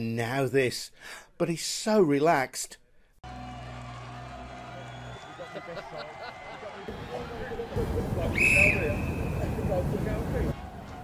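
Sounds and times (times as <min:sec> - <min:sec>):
outdoor noise: 0:06.8 - 0:11.0
referee's whistle: 0:08.3 - 0:09.7.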